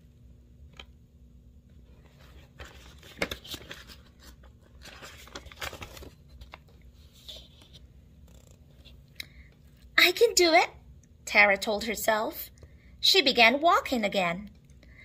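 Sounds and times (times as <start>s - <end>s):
book pages rustling and turning: 1.7s - 9.1s.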